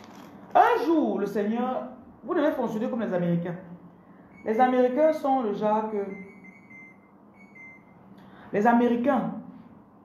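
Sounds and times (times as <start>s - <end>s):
faint high-pitched beeping tone: 4.3s - 5.0s, 5.8s - 8.0s.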